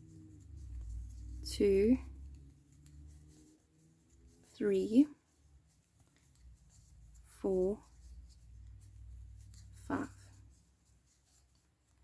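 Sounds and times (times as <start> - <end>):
crochet hook rustling yarn: 0.0 - 12.0.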